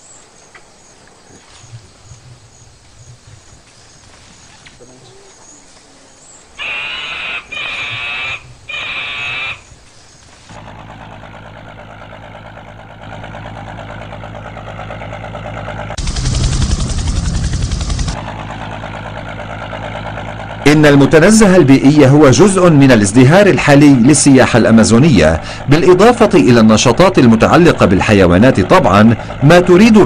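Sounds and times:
high-pitched calls: 6.6 - 9.8
boat engine running: 10.5 - 30.0.

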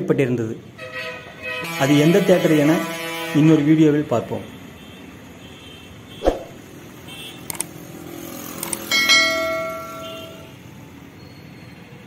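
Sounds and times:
faint street traffic: 0.0 - 12.0
clicks: 7.5 - 7.7
bright bell chime: 8.9 - 10.5.

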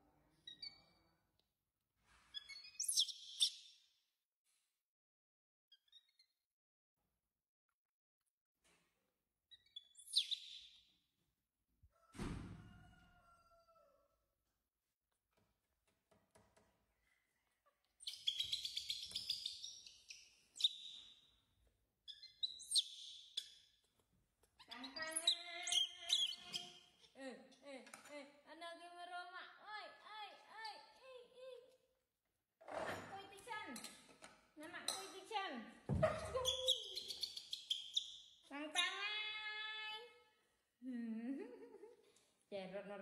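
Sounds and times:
thump: 12.1 - 12.7
baby monkey calling: 18.0 - 20.0, 24.6 - 26.8, 36.0 - 38.2
baby monkey squealing cries: 24.8 - 26.8.

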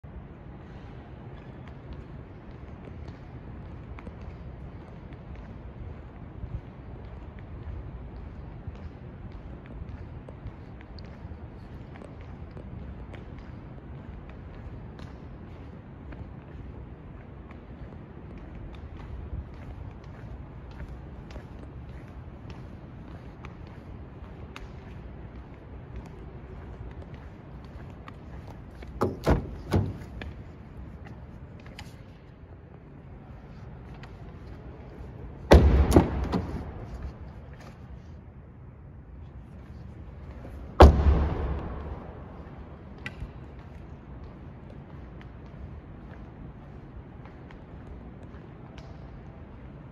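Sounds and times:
low rumble of room noise: 0.0 - 49.9
car door thud: 29.0 - 30.2, 35.5 - 36.9, 40.8 - 42.0
footsteps on hard floor: 35.5 - 38.0.

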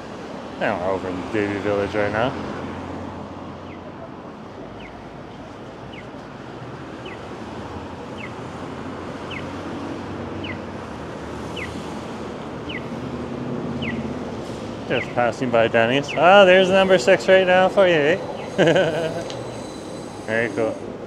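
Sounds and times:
street traffic noise: 0.0 - 21.0
crossing signal chirp: 5.8 - 6.2, 7.0 - 7.3, 8.1 - 8.4, 9.2 - 9.6, 10.4 - 10.7, 11.5 - 11.8, 12.6 - 13.0, 13.8 - 14.2, 14.9 - 20.8.

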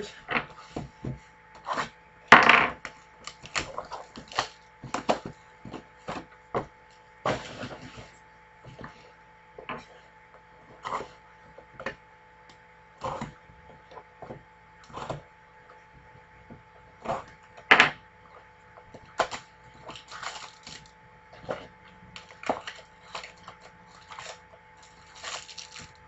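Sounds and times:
cardboard boxes knocking and scraping: 0.4 - 2.6, 3.5 - 9.0.

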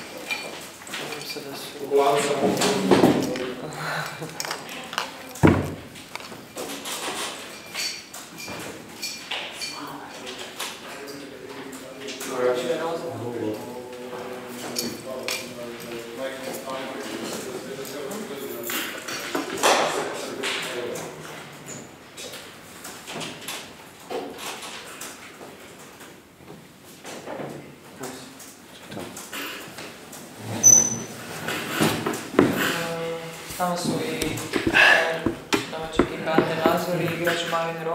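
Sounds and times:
short high beep: 30.6 - 31.1
knocks and bumps of movement: 33.9 - 37.3.

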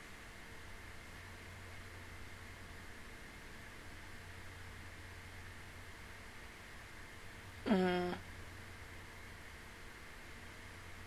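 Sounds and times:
woman humming through her hand: 7.7 - 8.2.

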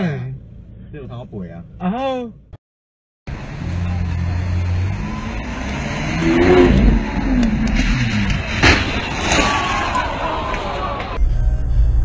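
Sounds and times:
sports car engine revving: 3.3 - 8.6
sharp crack: 7.0 - 11.2.

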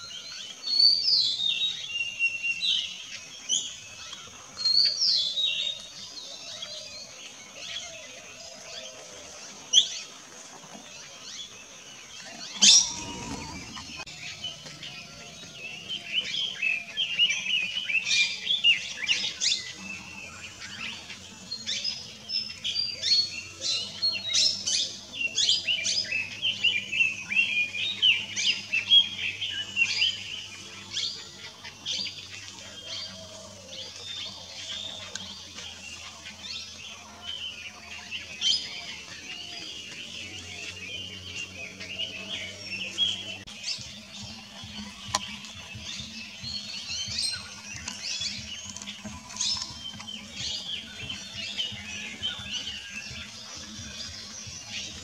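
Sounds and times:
birds chirping: 0.0 - 55.0.

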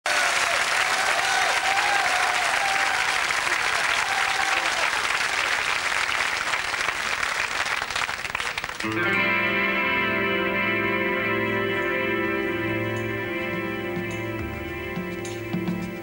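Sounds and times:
audience applauding: 0.0 - 9.3.

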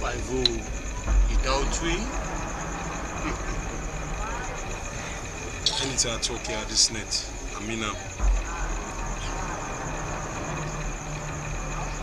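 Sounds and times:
faint pulsing high whine: 0.0 - 12.0
low hum with hiss: 0.0 - 12.0.

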